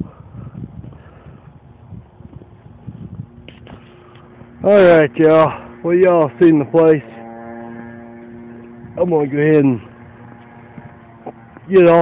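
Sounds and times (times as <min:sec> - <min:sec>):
distant vehicle engine hum: 0:01.0 - 0:12.0.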